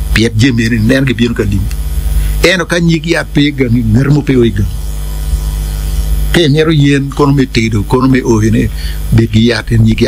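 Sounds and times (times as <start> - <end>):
buzzy electrical mains hum: 0.0 - 10.0
person speaking: 0.1 - 5.4, 6.3 - 10.0.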